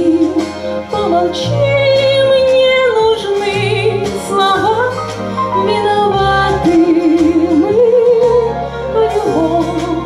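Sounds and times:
low bass notes: 0.0s - 10.0s
woman singing with vibrato: 0.0s - 10.0s.

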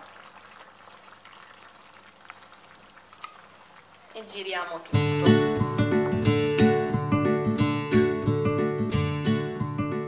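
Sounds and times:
food sizzling in a pot: 0.0s - 6.9s.

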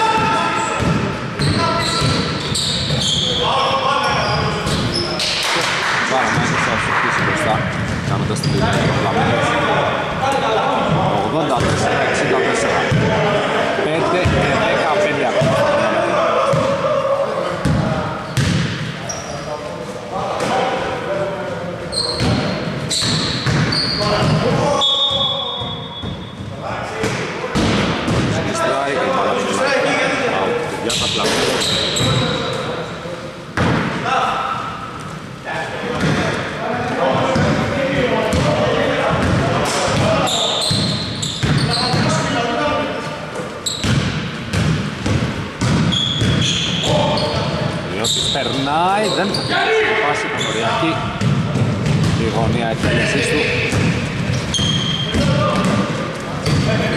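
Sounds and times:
basketball bouncing on wooden floor: 51.2s - 52.2s.

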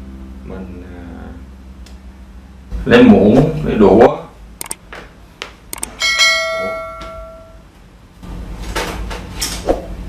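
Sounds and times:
short clicks: 4.6s - 4.8s, 5.7s - 6.0s
bright bell ding: 6.0s - 7.6s.

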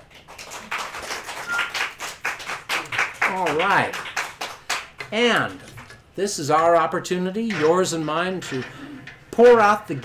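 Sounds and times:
people clapping: 0.0s - 5.4s.

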